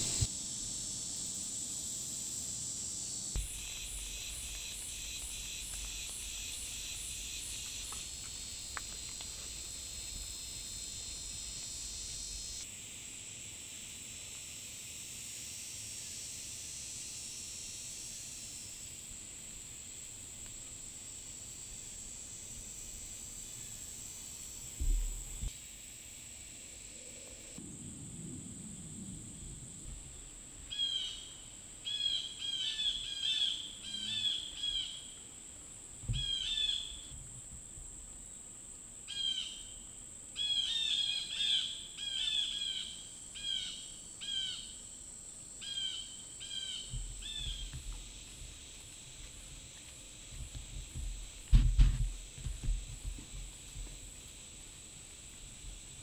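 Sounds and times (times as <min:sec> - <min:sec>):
high-pitched insect drone: 0:00.0 - 0:19.1, 0:30.7 - 0:35.2
dull thumps: 0:50.3 - 0:54.0.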